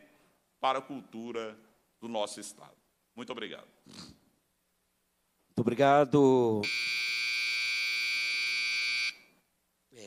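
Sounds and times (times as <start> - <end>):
high-pitched electronic buzzer: 6.6 - 9.2.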